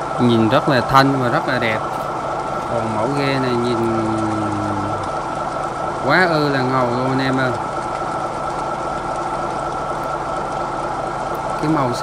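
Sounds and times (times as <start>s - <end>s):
boat engine: 0.0s - 12.0s.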